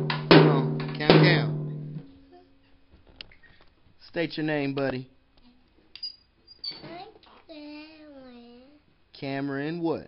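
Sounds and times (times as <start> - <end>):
drum kit ringing: 0.0 - 2.1.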